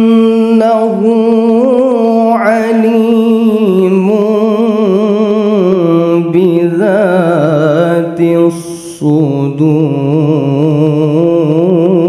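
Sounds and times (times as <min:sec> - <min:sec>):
person reciting melodically: 0:00.0 - 0:12.0.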